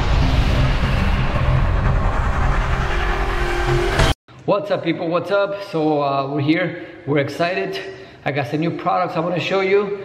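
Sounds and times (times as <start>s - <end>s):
dense wash of noise: 0.0s - 4.2s
heavy low rumble: 0.0s - 4.2s.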